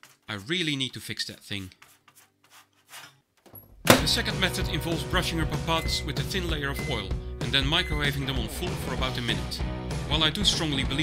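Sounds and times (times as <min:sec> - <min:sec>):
fingers scraping papadum: 0:00.0 - 0:00.5
music: 0:03.8 - 0:11.0.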